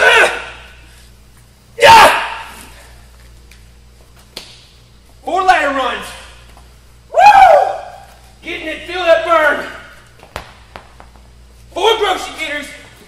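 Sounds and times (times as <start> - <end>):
man shouting: 0.0 - 0.7, 1.8 - 2.7, 7.1 - 9.9, 11.8 - 12.8.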